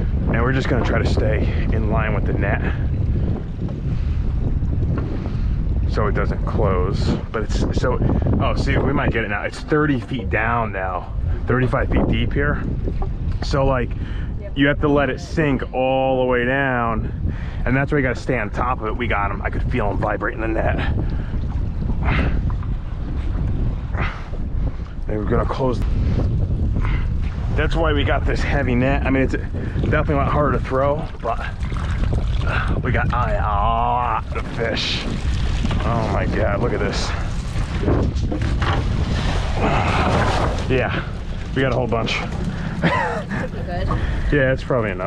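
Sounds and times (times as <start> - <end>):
wind buffeting microphone: 0.0 - 45.0.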